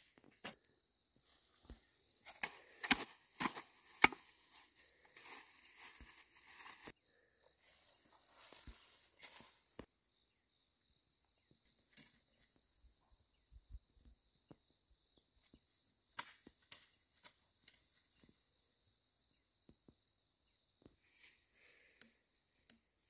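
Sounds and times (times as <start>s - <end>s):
metal hoe chopping into soil: 2.2s - 4.4s.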